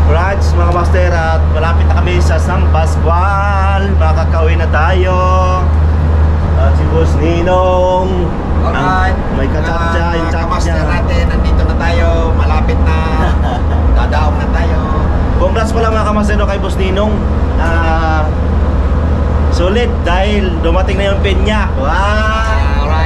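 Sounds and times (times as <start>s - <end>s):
people talking: 0.0s - 5.8s, 6.6s - 18.4s, 19.5s - 23.0s
ship engines droning: 0.0s - 23.0s.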